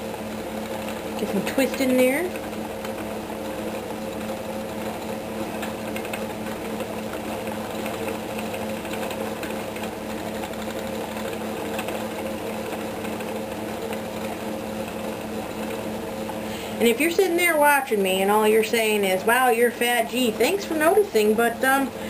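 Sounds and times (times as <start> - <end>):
spinning wheel motor hum: 0.0 - 22.0.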